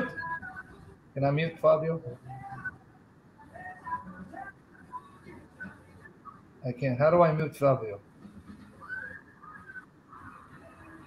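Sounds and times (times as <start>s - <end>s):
quiet room noise: 0.0s - 11.0s
faint high whistle-like tone: 8.7s - 11.0s.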